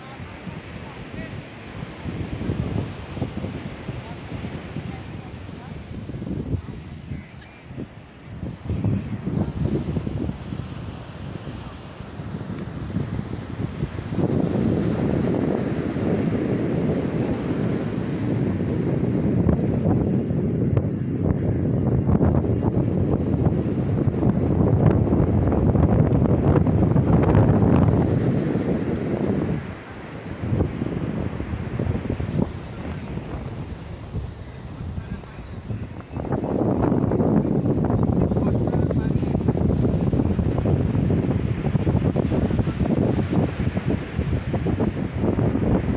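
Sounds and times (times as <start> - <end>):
surf breaking on beach: 0.0 - 45.9
wind buffeting microphone: 0.0 - 45.9.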